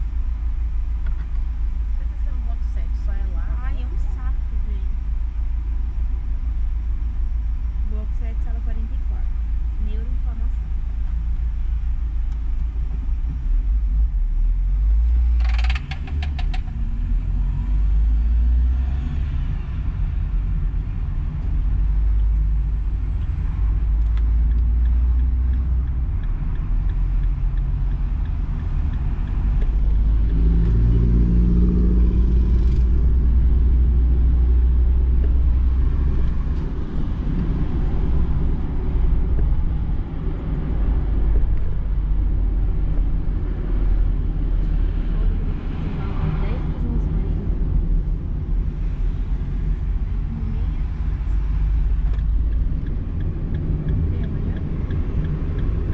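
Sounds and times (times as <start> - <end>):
car engine and road rumble: 0.0 - 55.9.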